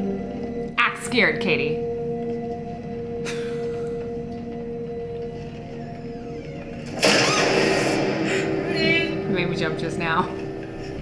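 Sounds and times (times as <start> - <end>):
film score drone: 0.0 - 11.0.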